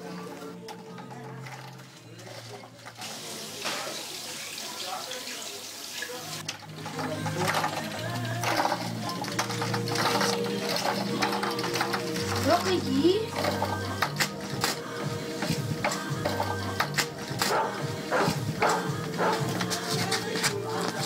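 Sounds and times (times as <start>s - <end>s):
background music with ticking beat: 6.4s - 21.0s.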